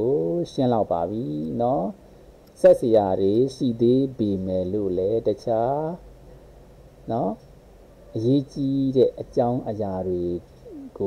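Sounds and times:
man talking: 0:00.0 - 0:02.0, 0:02.6 - 0:06.0, 0:07.0 - 0:07.4, 0:08.1 - 0:11.0.

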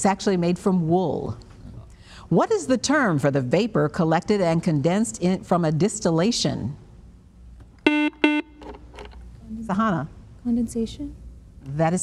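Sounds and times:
electronic buzzer: 0:07.8 - 0:08.6.

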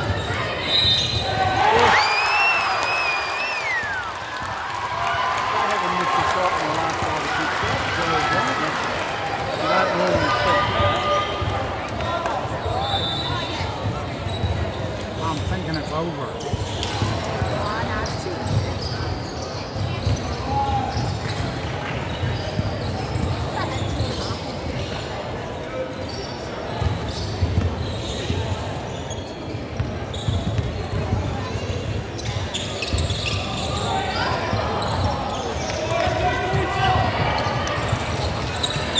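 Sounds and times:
indistinct chatter: 0:00.0 - 0:38.9.

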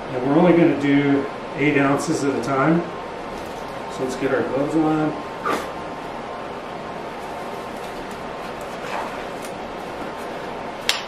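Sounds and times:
steady background hum: 0:00.0 - 0:11.0
rubber gloves snapping and rustling: 0:07.3 - 0:11.0.

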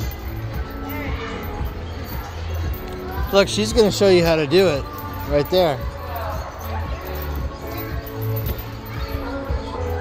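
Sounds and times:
background music with low beat: 0:00.0 - 0:10.0.

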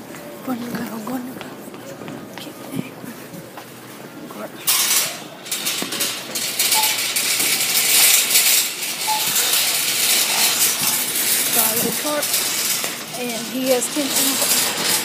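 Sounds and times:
shopping cart rattling: 0:04.6 - 0:15.0.

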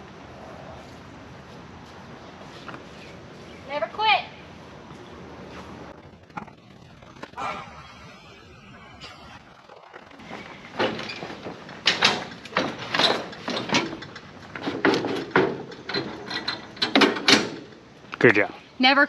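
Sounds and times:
lawn equipment clanking and rattling: 0:05.9 - 0:07.4, 0:09.4 - 0:18.1.

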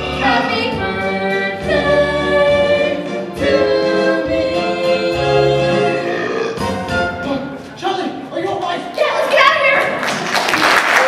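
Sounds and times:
voices singing held notes: 0:00.0 - 0:07.3
musical accompaniment: 0:00.0 - 0:07.8.

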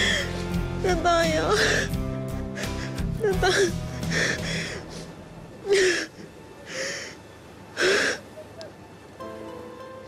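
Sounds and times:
woman sobbing: 0:00.0 - 0:05.0, 0:05.6 - 0:06.3.

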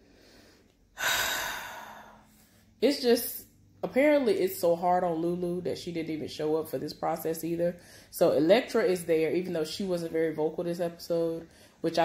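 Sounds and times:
woman sighing: 0:01.0 - 0:02.2
woman speaking: 0:02.8 - 0:12.0.

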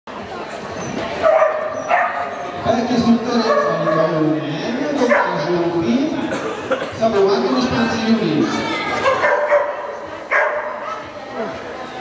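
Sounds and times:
people talking: 0:02.7 - 0:09.8.

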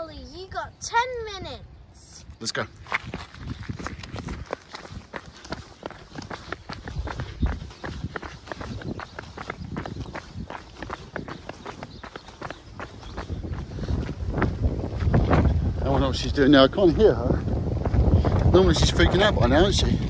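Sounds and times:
running footsteps on asphalt: 0:02.8 - 0:20.0.

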